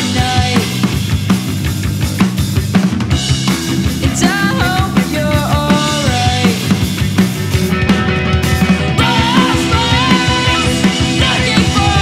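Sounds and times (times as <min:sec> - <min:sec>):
drum kit: 0:00.0 - 0:12.0
electric bass: 0:00.0 - 0:12.0
electric guitar: 0:00.0 - 0:12.0.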